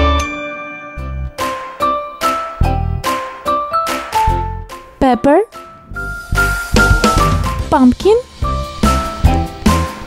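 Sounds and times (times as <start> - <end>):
bell-like melody: 0.0 - 2.6, 5.1 - 7.4
low bass notes: 5.7 - 9.9.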